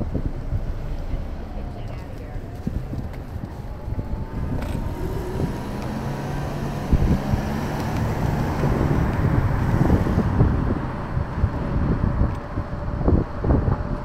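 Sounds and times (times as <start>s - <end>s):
street traffic: 0.0s - 14.0s
wind rumbling on microphone: 0.0s - 14.0s.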